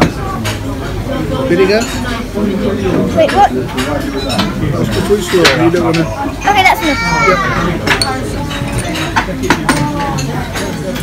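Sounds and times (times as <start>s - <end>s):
crockery and cutlery clinking: 0.0s - 11.0s.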